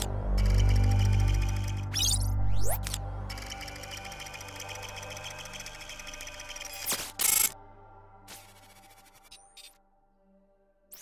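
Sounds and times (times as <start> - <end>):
steady synth drone: 0.0 - 6.8
fast electronic clicks: 0.0 - 7.6.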